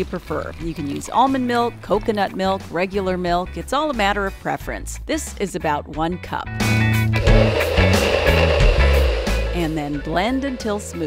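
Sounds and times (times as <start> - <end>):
background music: 0.0 - 11.0
blender running: 7.2 - 11.0.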